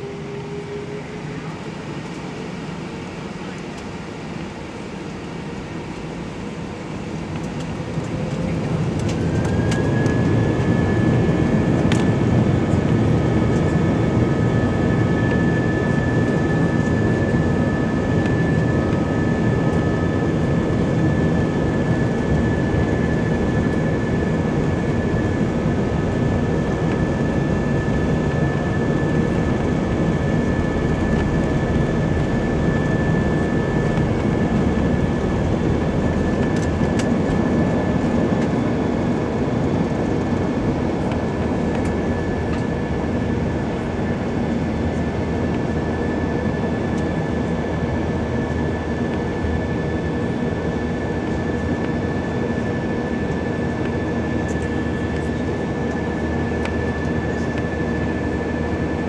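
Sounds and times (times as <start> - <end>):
jet engine whine: 0.0 - 59.0
wheels rumbling on runway: 20.5 - 42.6.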